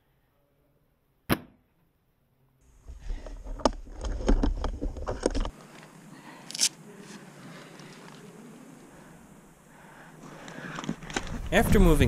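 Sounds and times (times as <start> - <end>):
airsoft rifle shot crack: 1.3 - 1.6.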